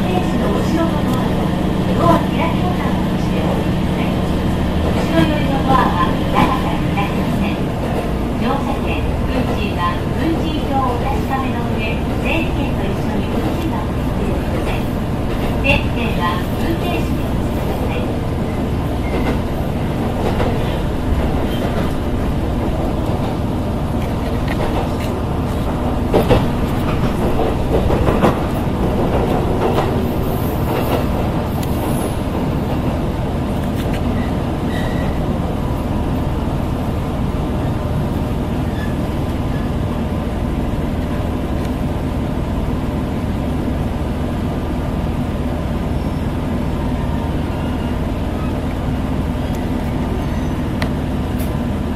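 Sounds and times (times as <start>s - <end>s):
railcar engine and running rumble: 0.0s - 51.9s.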